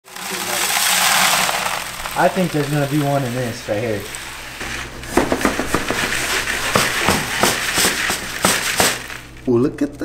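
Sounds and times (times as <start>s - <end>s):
gravel rattling through wire screen: 0.1s - 9.5s.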